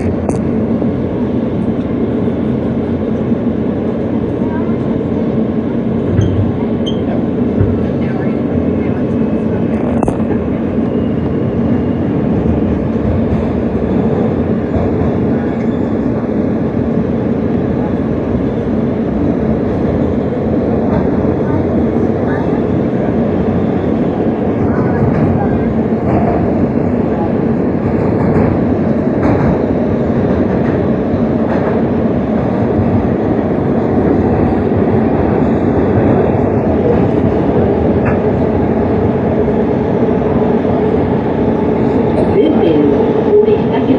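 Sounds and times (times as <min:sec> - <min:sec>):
subway train wheels rumbling: 0:00.0 - 0:43.9.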